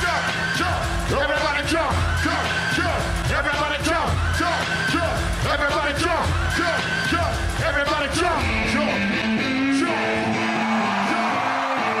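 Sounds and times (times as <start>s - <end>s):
crowd noise: 0.0s - 12.0s
live band music: 0.0s - 12.0s.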